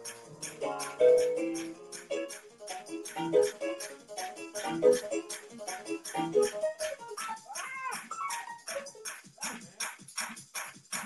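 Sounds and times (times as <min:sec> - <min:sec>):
sampled drum beat: 0:07.2 - 0:11.0.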